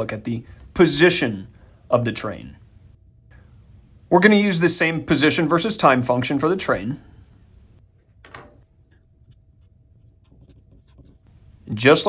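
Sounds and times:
marker writing on paper: 9.1s - 11.3s.

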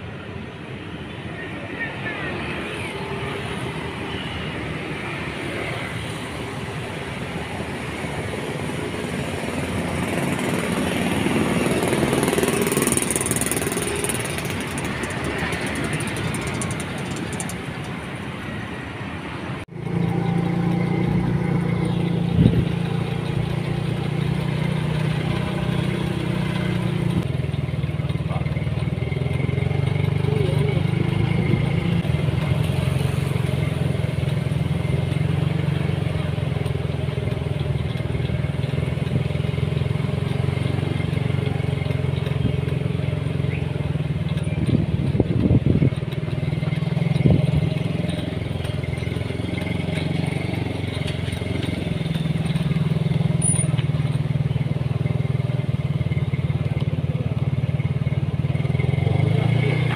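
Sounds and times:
street traffic: 0.0s - 59.9s
vehicle engine running: 5.0s - 19.0s, 19.6s - 59.9s.

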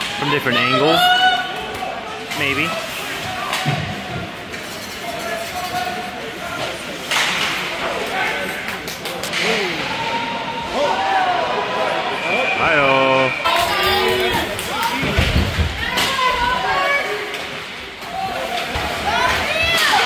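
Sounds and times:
spectators chatting: 0.0s - 20.0s.

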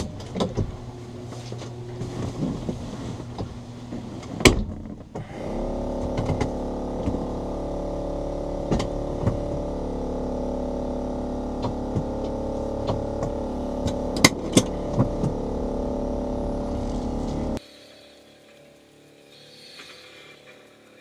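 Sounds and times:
clicks and knocks in cabin: 0.0s - 0.9s, 1.6s - 5.4s, 11.6s - 15.6s
electric car whine: 0.0s - 21.0s.

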